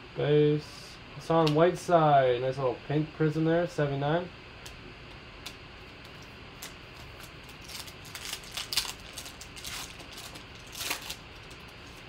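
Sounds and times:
foil wrapper tearing and crinkling: 0:06.6 - 0:12.0.

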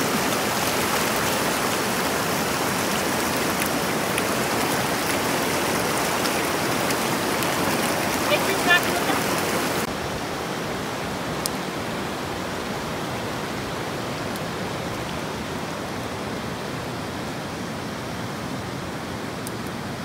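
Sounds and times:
river rushing: 0:00.0 - 0:20.0.

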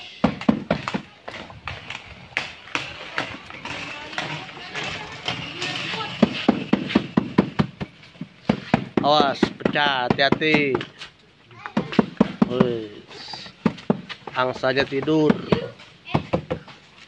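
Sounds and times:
taps and knocks: 0:00.2 - 0:11.0, 0:11.6 - 0:16.8
compost rustling and scraping: 0:00.8 - 0:09.4.

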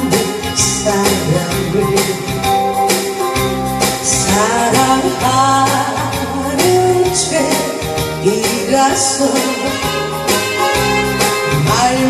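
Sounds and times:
woman singing into a microphone: 0:00.0 - 0:02.9, 0:03.9 - 0:10.8, 0:11.4 - 0:12.0
instrumental backing track: 0:00.0 - 0:12.0.

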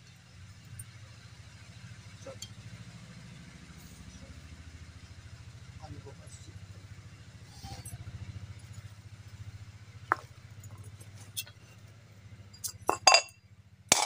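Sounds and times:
small engine idling: 0:00.0 - 0:14.0
faint clinks: 0:12.5 - 0:14.0.

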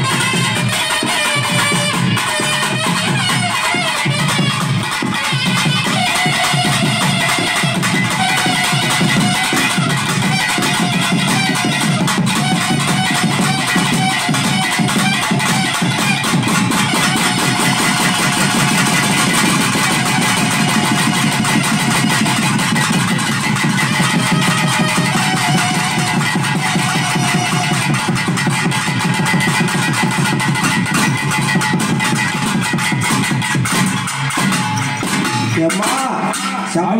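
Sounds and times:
fast folk drumming: 0:00.0 - 0:36.9.

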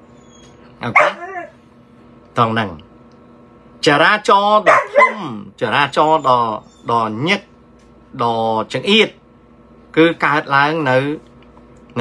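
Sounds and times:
dog barking: 0:00.8 - 0:01.5, 0:04.6 - 0:05.3.

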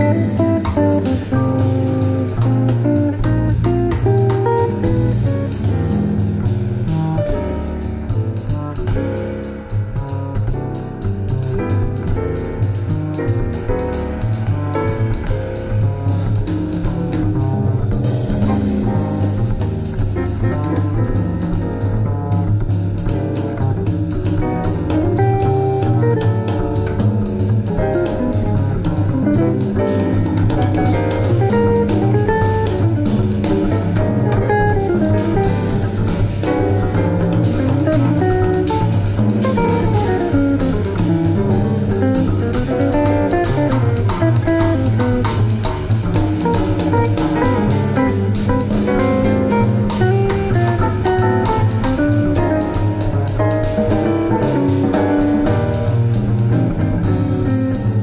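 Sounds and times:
drum kit: 0:00.0 - 0:58.0
plucked string lead melody: 0:00.0 - 0:58.0
walking bass: 0:00.0 - 0:58.0.

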